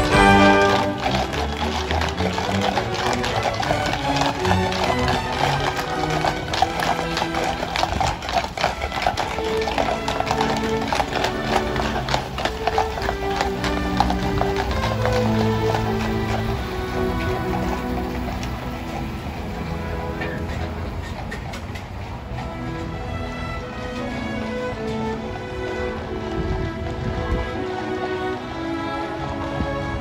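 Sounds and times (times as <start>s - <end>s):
music playing: 0.0s - 21.0s
horse hooves clip-clopping on asphalt: 0.0s - 30.0s.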